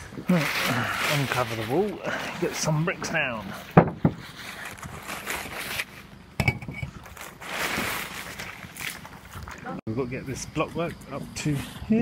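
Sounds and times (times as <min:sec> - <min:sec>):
plastic sheeting rustling: 0:00.0 - 0:06.1, 0:07.1 - 0:09.7.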